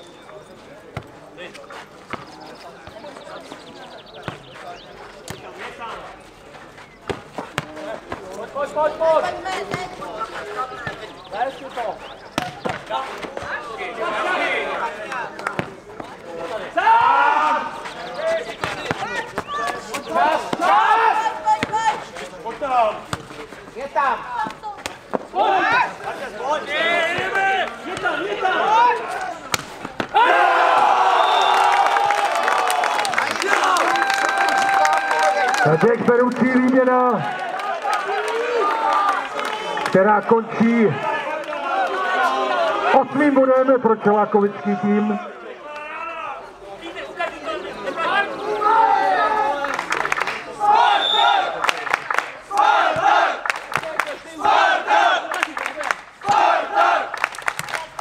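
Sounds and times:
ball kicked and bouncing: 0.9 - 1.2, 2.0 - 3.1, 4.2 - 4.6, 7.0 - 8.5, 9.6 - 10.0, 12.3 - 13.6, 15.4 - 16.2, 21.6 - 21.9, 23.1 - 23.3
players shouting: 7.0 - 23.2, 23.8 - 58.0.

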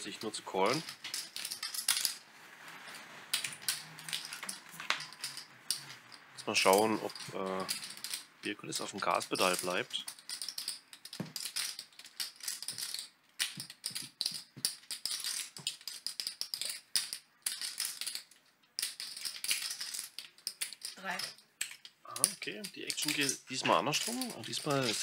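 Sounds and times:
poker chips clattering: 0.1 - 25.0.

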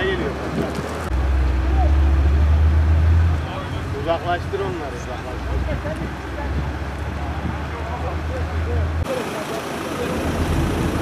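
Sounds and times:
heavy vehicle engine rumble: 0.0 - 11.0
crowd voices: 1.4 - 11.0.

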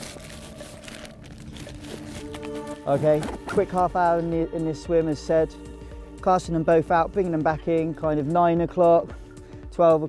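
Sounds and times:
plastic pack crinkling: 0.0 - 3.8.

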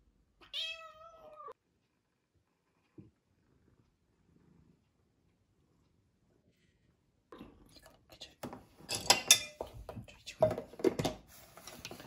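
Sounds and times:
cat meowing: 0.4 - 1.6.

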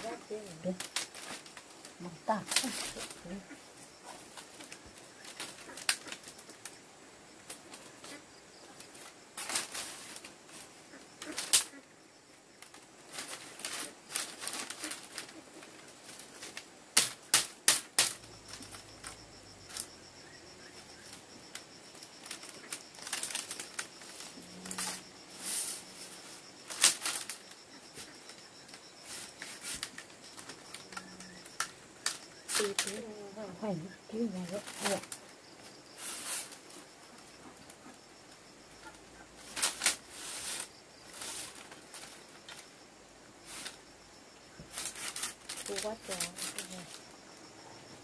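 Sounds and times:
bamboo strips rustling and clacking: 0.0 - 42.8, 43.4 - 48.0.

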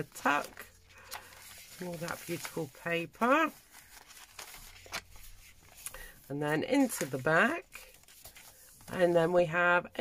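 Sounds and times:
paper pages turning: 0.0 - 9.2.

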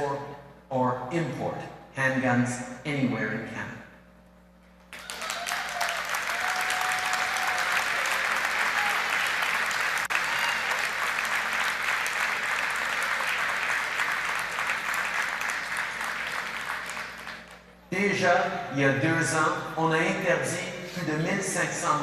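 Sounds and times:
audience applauding: 4.9 - 17.8.

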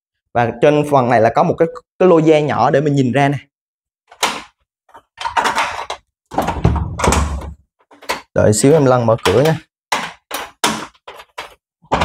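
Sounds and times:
door latch clicks and clunks: 5.3 - 8.2.

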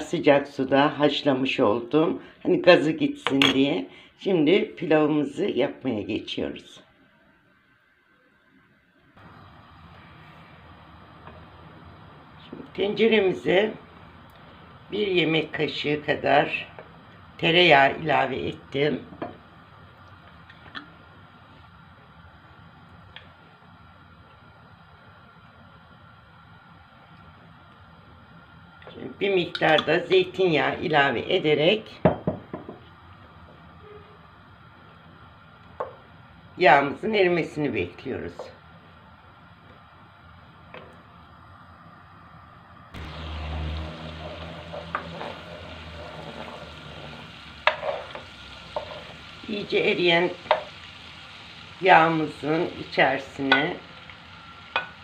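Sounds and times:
faint background hum: 0.0 - 55.0
oil sizzling in a pan: 9.2 - 36.5, 43.0 - 55.0
wooden spoon knocking on pan: 32.0 - 32.8, 47.6 - 49.1, 50.4 - 50.7, 54.7 - 55.0
wooden spoon stirring: 43.6 - 49.6, 50.4 - 50.8
spoon knocking against pan: 50.5 - 50.7, 54.7 - 55.0.

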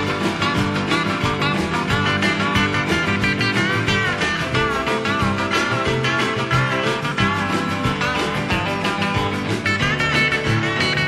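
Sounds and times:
country boogie band: 0.0 - 11.0
guitar solo with bent notes: 0.0 - 11.0
steady drum beat: 0.0 - 11.0.

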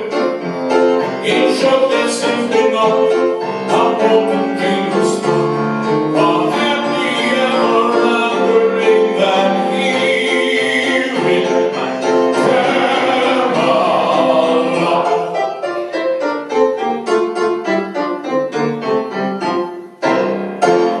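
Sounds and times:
person singing: 0.0 - 5.5, 6.1 - 15.9
piano-led accompaniment: 0.0 - 21.0.

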